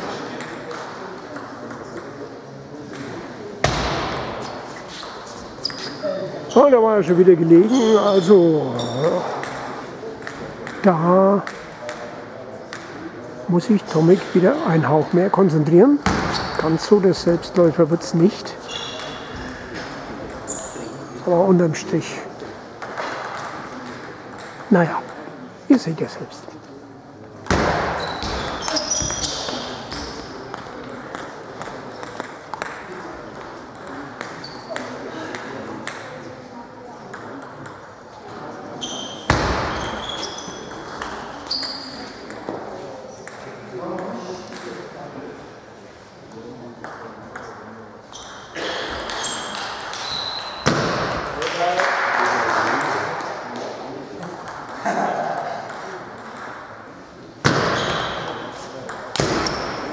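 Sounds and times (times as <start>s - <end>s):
table tennis ball on bats: 2.8s - 6.0s, 9.0s - 13.0s, 16.0s - 16.6s, 22.3s - 25.2s, 27.4s - 36.2s, 37.1s - 37.9s, 39.2s - 44.9s, 48.2s - 51.7s, 52.5s - 56.8s, 57.4s - 59.9s
ball bouncing on table: 2.9s - 4.4s, 9.2s - 10.8s, 16.0s - 16.6s, 22.4s - 25.2s, 27.4s - 36.1s, 37.1s - 37.8s, 54.4s - 56.6s, 57.4s - 59.8s.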